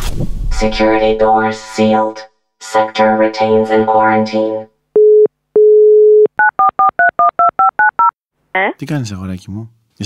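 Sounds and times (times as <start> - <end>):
telephone dial tone: 5.0 - 8.1
touch-tone keypad beeps: 5.0 - 8.1.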